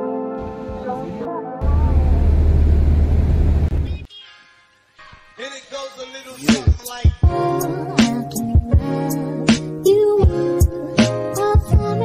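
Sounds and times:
loud steady rumbling with hiss: 1.6 - 4.1.

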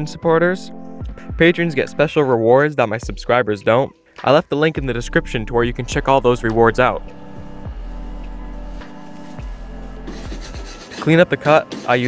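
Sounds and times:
background music: 0.0 - 12.0
block plane shaving wood: 10.1 - 12.0.

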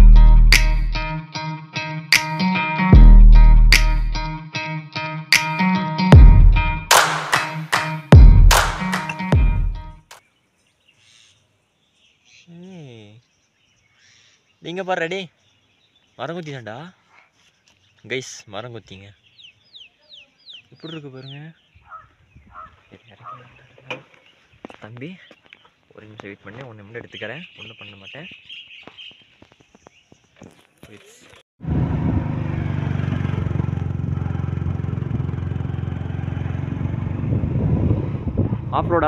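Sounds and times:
background music: 0.0 - 10.0
faint bird chirps: 10.2 - 16.3, 16.9 - 26.2, 26.9 - 30.4.

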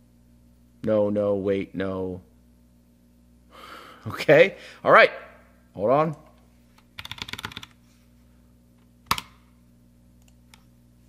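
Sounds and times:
computer keyboard typing: 7.0 - 7.8.

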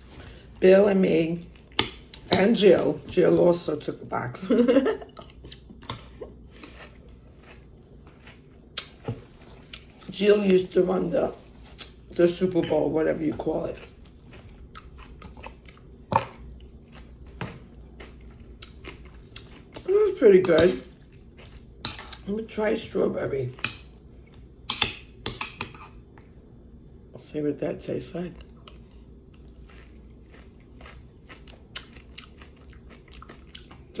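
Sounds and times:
chewing crunchy cereal: 5.0 - 10.2, 11.7 - 22.3, 28.3 - 34.0.

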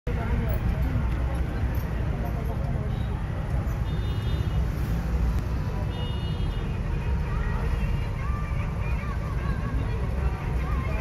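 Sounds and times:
road rumble inside car: 4.7 - 6.0, 6.6 - 11.0.

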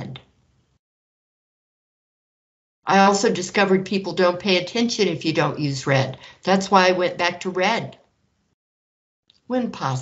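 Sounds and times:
woman's voice: 2.9 - 8.0, 9.5 - 10.0.

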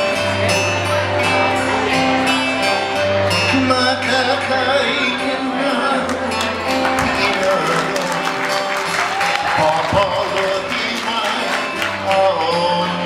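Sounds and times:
acoustic guitars playing slow song: 0.0 - 13.0.

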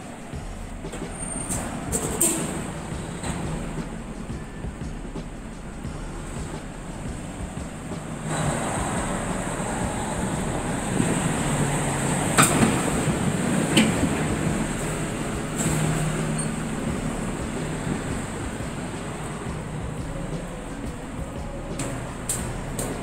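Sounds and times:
street traffic: 0.0 - 23.0.

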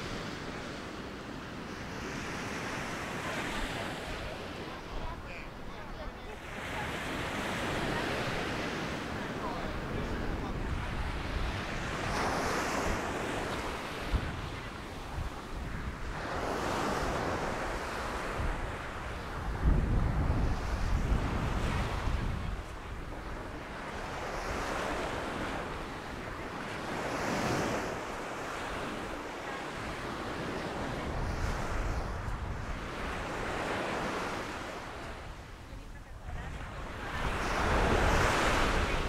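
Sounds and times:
waves breaking on sandy shore: 0.0 - 39.0
wind buffeting microphone: 7.1 - 39.0.

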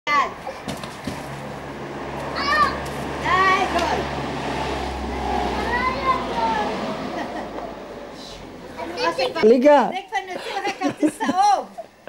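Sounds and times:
children shouting: 2.2 - 3.7, 5.0 - 7.0.

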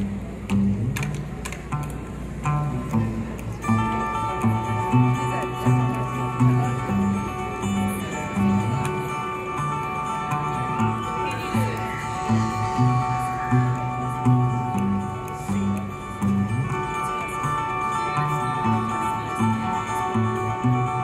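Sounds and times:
acoustic guitars playing: 0.0 - 21.0.

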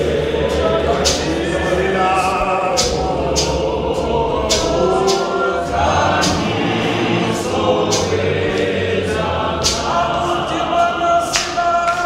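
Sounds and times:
choir singing a gospel hymn: 0.0 - 12.0
sharp percussive strikes: 0.0 - 12.0.

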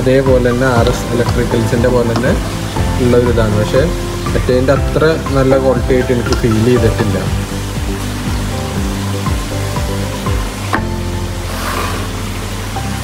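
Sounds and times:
aquarium air pump buzzing: 0.0 - 13.0
pump click: 0.8 - 2.4.

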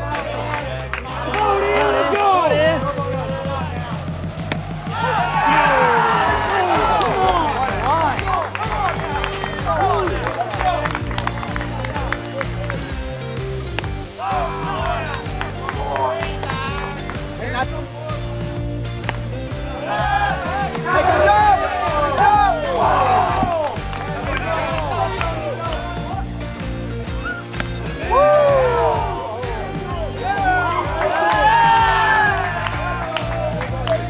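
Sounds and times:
held bass notes: 0.8 - 34.0.

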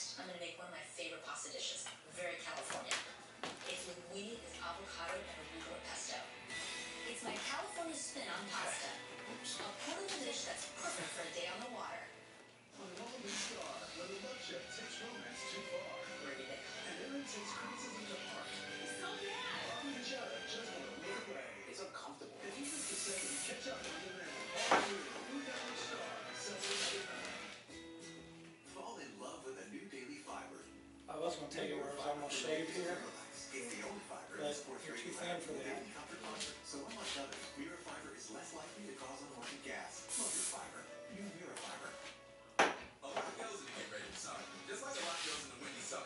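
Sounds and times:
faint background talk: 0.0 - 28.0
hairspray hissing: 22.6 - 23.5, 40.1 - 40.6
steady hiss: 40.0 - 40.6.

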